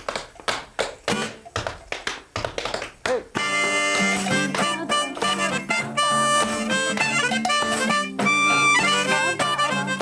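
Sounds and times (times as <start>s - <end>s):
tap shoes on wooden board: 0.0s - 5.4s
acoustic guitar: 0.0s - 10.0s
harmonica chord: 3.4s - 10.0s.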